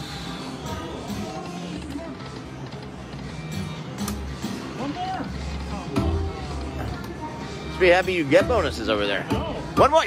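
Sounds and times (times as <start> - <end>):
casino background din: 0.0 - 10.0.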